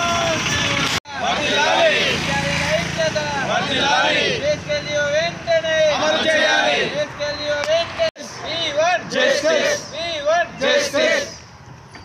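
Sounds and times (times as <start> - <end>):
protesters chanting: 0.1 - 7.1, 8.5 - 11.4.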